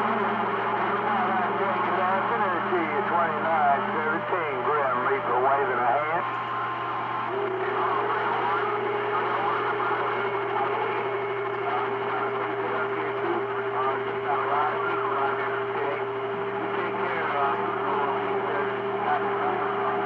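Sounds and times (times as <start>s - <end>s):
garbled radio voices: 0.0s - 20.0s
radio static noise: 0.0s - 20.0s.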